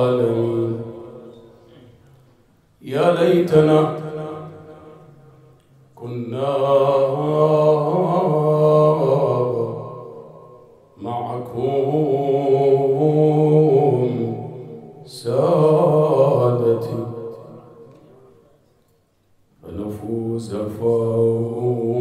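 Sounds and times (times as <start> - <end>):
man chanting into microphone: 0.0 - 2.0, 2.8 - 18.6, 19.6 - 22.0.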